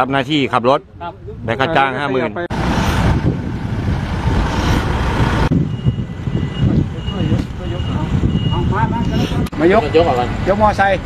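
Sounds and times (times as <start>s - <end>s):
low street rumble: 2.2s - 11.0s
loud rushing noise: 2.5s - 6.9s
vehicle warning beeper: 5.5s - 9.4s.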